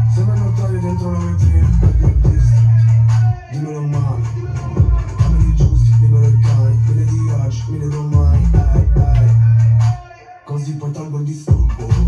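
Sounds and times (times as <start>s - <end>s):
heavy bass: 0.0s - 12.0s
person rapping: 0.0s - 12.0s.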